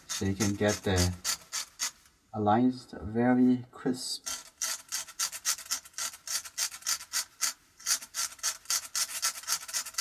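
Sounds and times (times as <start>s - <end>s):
tool scratching paper: 0.0s - 2.0s, 4.2s - 10.0s.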